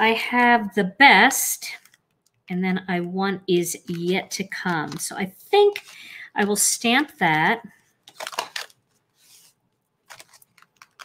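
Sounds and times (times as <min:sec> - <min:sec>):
plastic sheet crinkling: 0:03.7 - 0:11.0.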